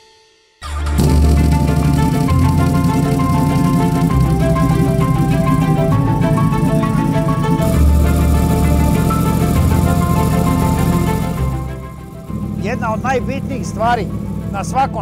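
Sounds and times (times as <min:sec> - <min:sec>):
melody over steady bass line: 0:00.6 - 0:15.0.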